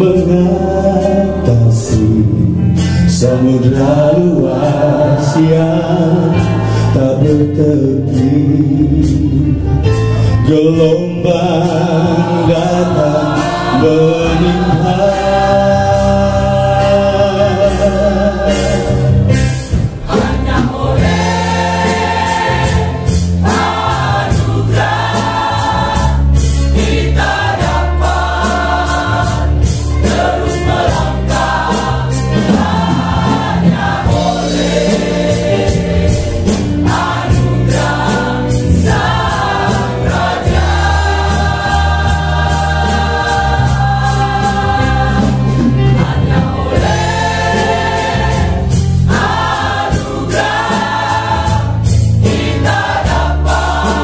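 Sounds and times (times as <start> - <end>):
mixed choir singing a hymn: 0.0 - 9.7, 10.4 - 54.0.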